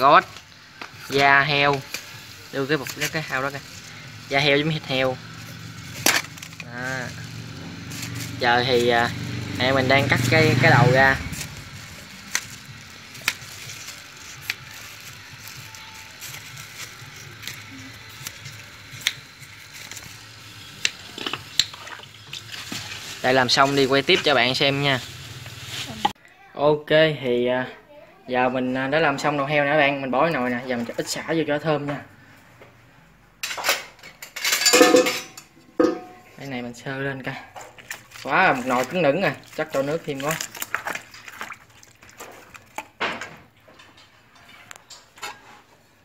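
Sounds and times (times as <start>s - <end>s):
metal cookware clanking: 33.4s - 36.4s.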